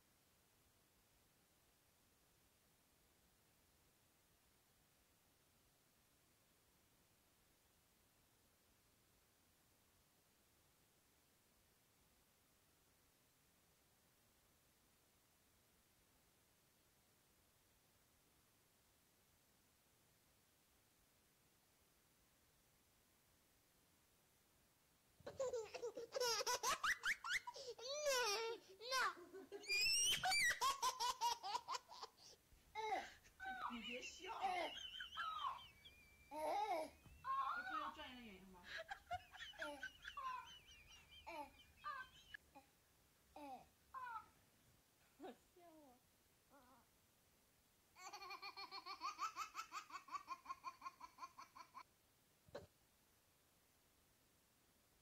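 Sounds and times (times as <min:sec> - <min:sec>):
baby laughing: 0:25.3 - 0:37.7, 0:38.7 - 0:42.7, 0:48.0 - 0:51.9
toy speaker high-pitched laughing: 0:25.4 - 0:31.6.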